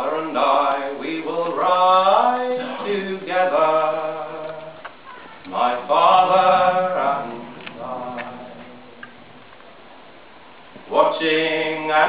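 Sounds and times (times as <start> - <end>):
man singing unaccompanied: 0.0 - 4.8, 5.5 - 9.3, 10.8 - 12.0.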